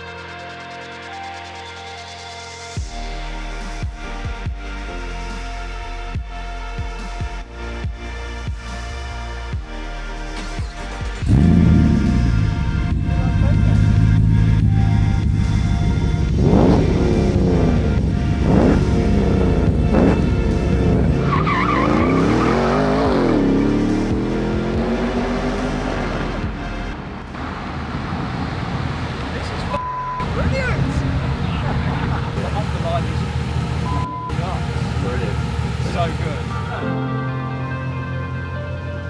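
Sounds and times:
engine revving through gear changes: 10.6s - 27.4s.

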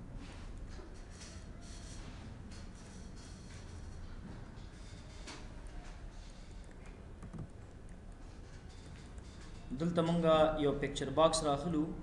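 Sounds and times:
computer keyboard keystrokes: 6.6s - 8.0s.

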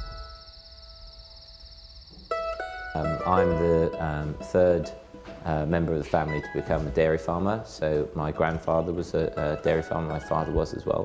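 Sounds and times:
high insect-like trill: 0.0s - 3.5s
soft plucked guitar music: 2.3s - 11.0s.

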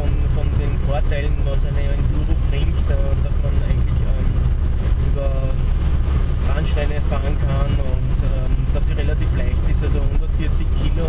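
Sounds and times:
man talking: 0.0s - 5.7s, 6.4s - 11.0s
car engine and tyres rumbling: 0.0s - 11.0s.

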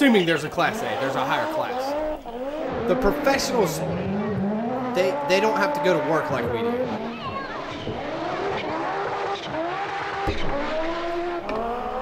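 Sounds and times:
rally car engines accelerating: 0.0s - 12.0s
sharp crack: 7.4s - 11.8s.

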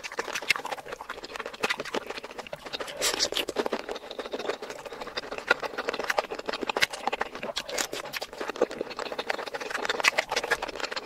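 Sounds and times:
person chewing wetly: 0.0s - 11.0s.

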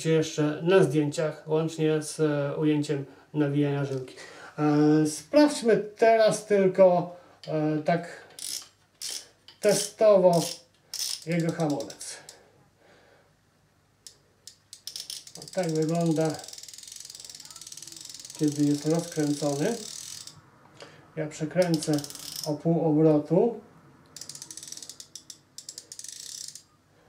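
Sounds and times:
fishing reel drag clicks: 8.4s - 12.0s, 14.0s - 20.4s, 21.6s - 22.5s, 24.2s - 26.7s.

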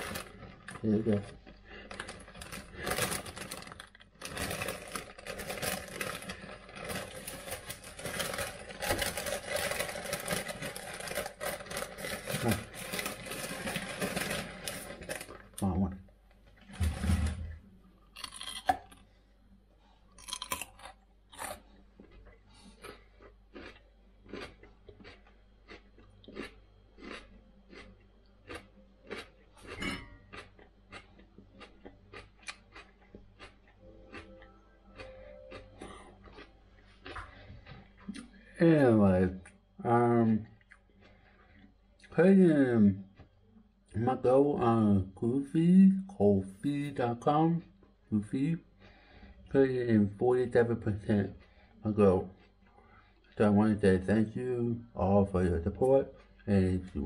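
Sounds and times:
plastic bag rustling: 0.0s - 15.6s
crisp chewing crunches: 0.0s - 15.7s, 18.1s - 19.1s, 20.2s - 38.4s.

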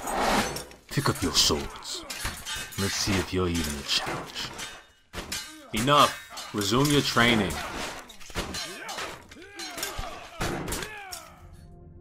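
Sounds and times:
metallic sword clashes: 0.5s - 11.5s.

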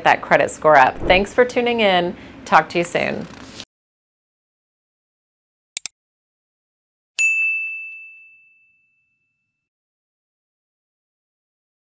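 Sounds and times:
bell ding: 7.2s - 9.6s.

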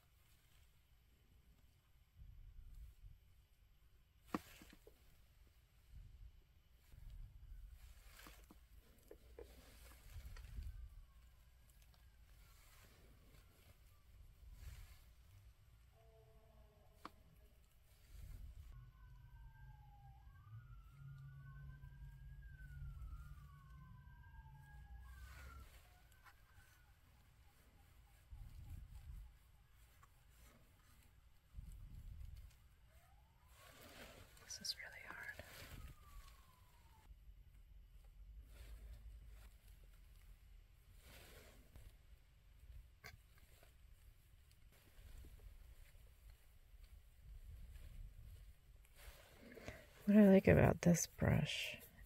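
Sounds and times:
low steady rumble: 0.0s - 52.0s
faint two-tone siren wailing: 6.8s - 40.2s.

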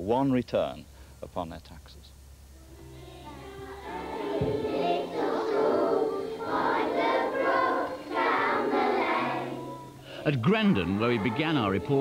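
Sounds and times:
children singing together: 2.7s - 10.0s, 10.7s - 12.0s.

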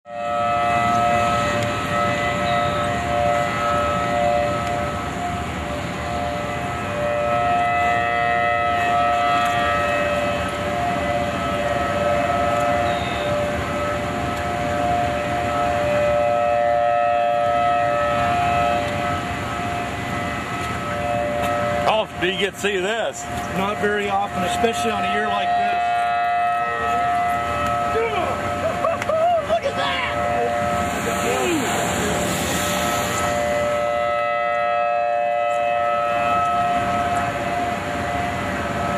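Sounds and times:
tornado warning sirens: 0.0s - 38.9s
low rushing noise: 29.7s - 34.2s.

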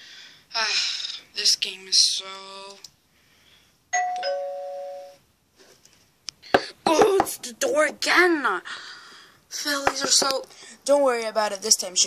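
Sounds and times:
two-tone doorbell chime: 4.0s - 5.2s.

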